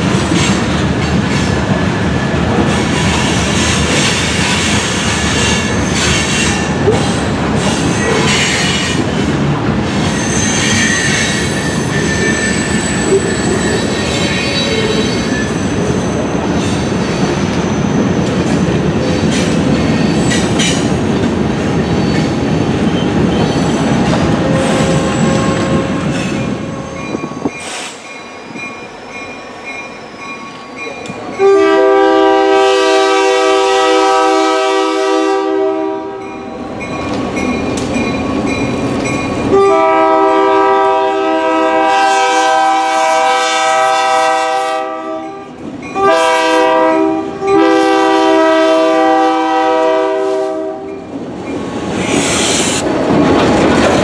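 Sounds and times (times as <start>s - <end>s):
wheels squealing on rails: 0.0s - 35.2s, 50.4s - 54.0s
diesel locomotives rumbling past: 0.0s - 54.0s
locomotive air horn: 24.4s - 26.8s, 31.4s - 36.2s, 39.5s - 45.4s, 46.0s - 50.9s.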